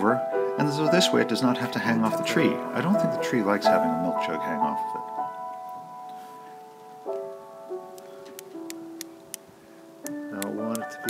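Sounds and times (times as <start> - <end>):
solo piano slow notes: 0.0 - 11.0.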